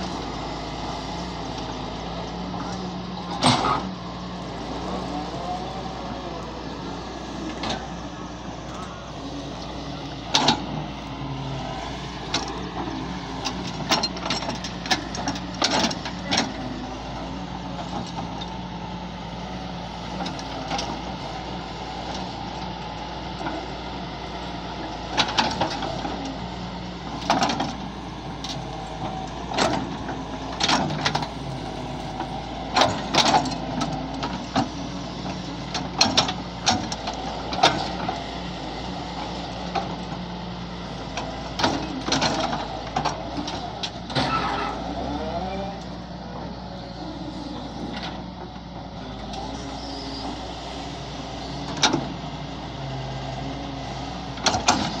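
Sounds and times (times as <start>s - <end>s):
excavator diesel engine running: 0.0s - 55.0s.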